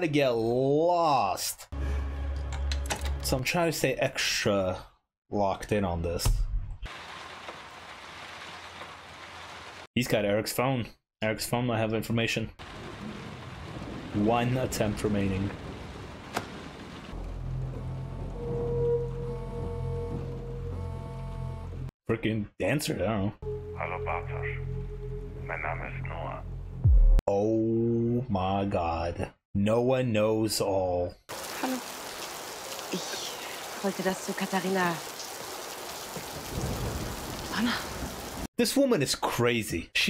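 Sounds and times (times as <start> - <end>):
steady rain: 6.9 - 9.9, 12.6 - 17.8, 31.3 - 38.5
dark droning music: 17.2 - 21.9
woman speaking: 31.6 - 31.8, 32.9 - 35.0.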